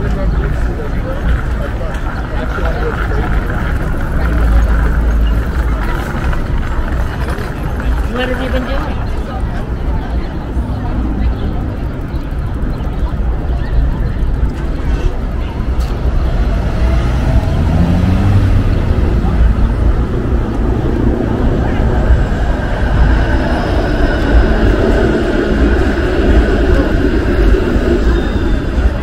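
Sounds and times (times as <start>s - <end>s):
passing car traffic: 0.0s - 29.0s
steady low rumble: 0.0s - 29.0s
voices of passers-by: 0.0s - 29.0s.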